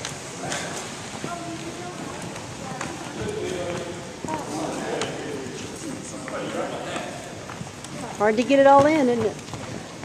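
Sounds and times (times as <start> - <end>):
footsteps on hardwood floor: 0.0 - 10.0.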